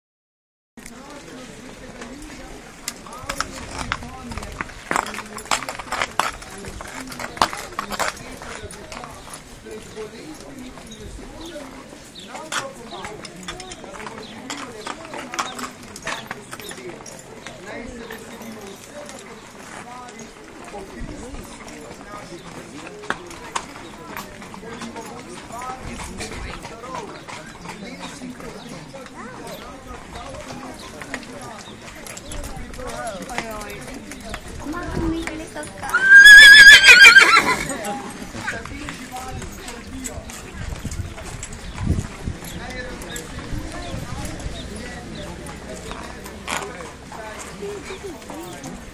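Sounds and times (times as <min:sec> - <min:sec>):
hooves clip-clopping on pavement: 0:00.8 - 0:48.9
people talking: 0:00.8 - 0:48.9
horse whinnying: 0:35.9 - 0:37.8.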